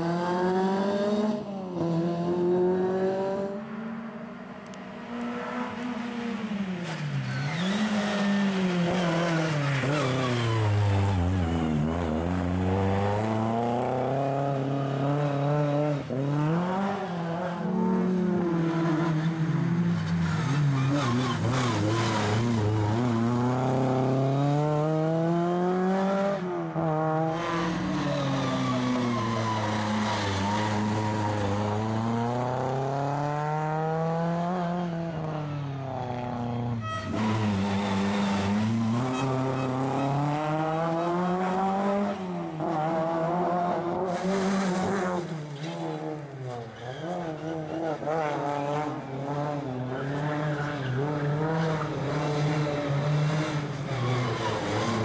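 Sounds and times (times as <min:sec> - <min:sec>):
rally car engine revving: 0:00.0 - 0:03.6, 0:05.1 - 0:55.0.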